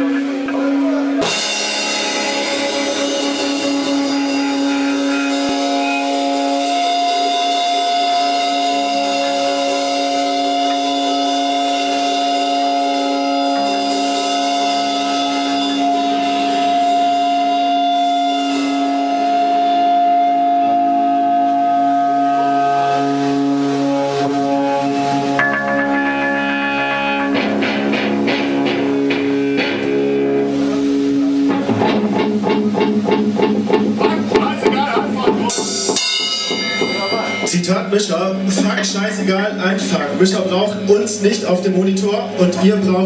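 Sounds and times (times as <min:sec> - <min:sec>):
drum kit: 0:00.0 - 0:40.8
electric guitar sustained notes: 0:00.0 - 0:43.0
cymbal hits: 0:25.2 - 0:28.8, 0:35.4 - 0:38.9.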